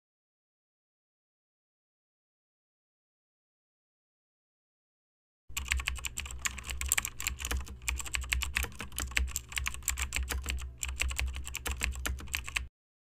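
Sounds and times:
keyboard key clicks: 0:05.5 - 0:12.7
steady low hum: 0:05.5 - 0:12.7.

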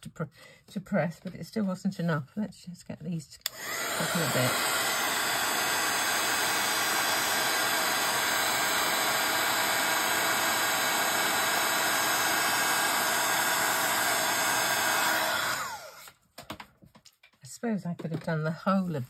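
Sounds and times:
heat gun blowing: 0:03.4 - 0:16.2.

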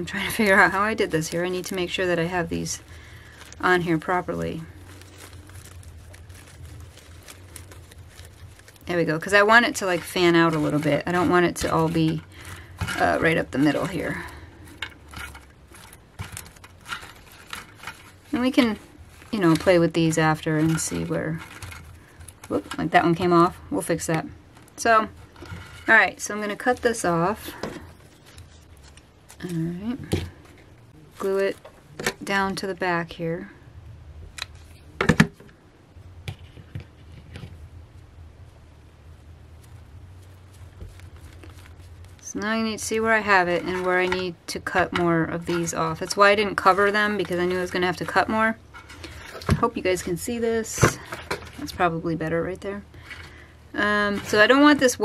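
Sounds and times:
artificial flower stems rustling: 0:00.0 - 0:55.0
low steady hum: 0:00.0 - 0:55.0.

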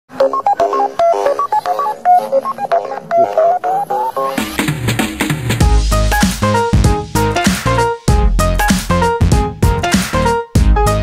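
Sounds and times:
electronic beep melody: 0:00.1 - 0:04.6.

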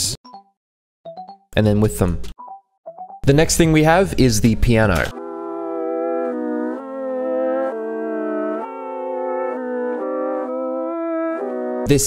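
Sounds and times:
reversed piano chords: 0:05.0 - 0:12.0.

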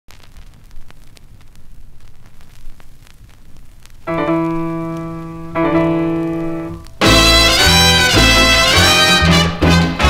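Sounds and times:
vinyl clicks and pops: 0:00.1 - 0:07.8
vinyl surface hiss and rumble: 0:00.1 - 0:10.0.

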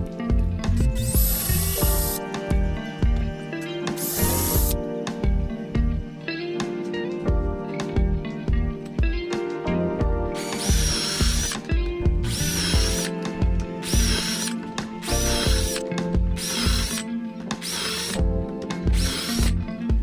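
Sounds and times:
cordless drill whining: 0:00.8 - 0:02.2, 0:04.0 - 0:04.8, 0:10.4 - 0:15.8, 0:16.4 - 0:18.2, 0:18.9 - 0:19.6.

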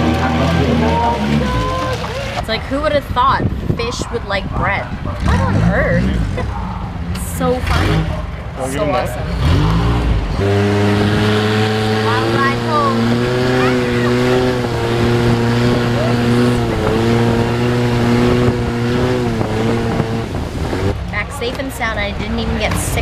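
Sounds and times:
boat engine running: 0:00.0 - 0:23.0.

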